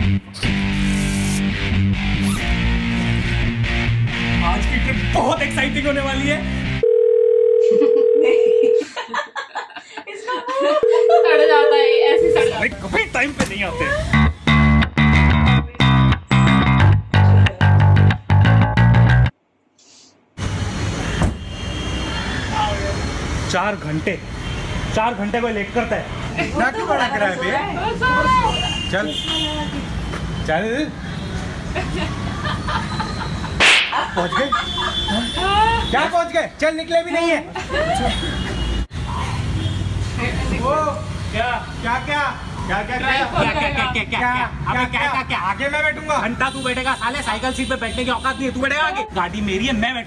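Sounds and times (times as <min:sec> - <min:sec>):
telephone calling tone: 0:06.8 - 0:08.8, 0:10.8 - 0:12.6
person speaking: 0:10.8 - 0:12.9.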